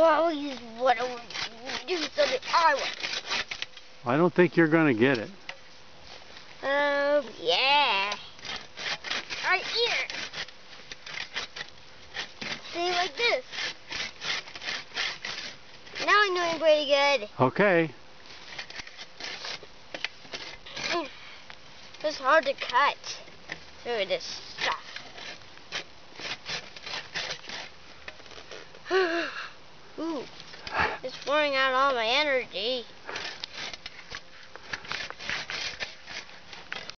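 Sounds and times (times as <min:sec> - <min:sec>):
child's voice: 0:00.0 - 0:03.0, 0:06.6 - 0:08.4, 0:09.4 - 0:10.2, 0:12.6 - 0:13.5, 0:16.0 - 0:17.3, 0:20.7 - 0:21.2, 0:22.0 - 0:23.2, 0:23.8 - 0:25.0, 0:30.0 - 0:30.3, 0:31.0 - 0:32.9
hand saw rasping on wood: 0:00.0 - 0:03.7, 0:07.8 - 0:16.7, 0:18.4 - 0:19.7, 0:20.3 - 0:21.1, 0:23.9 - 0:27.7, 0:33.1 - 0:36.9.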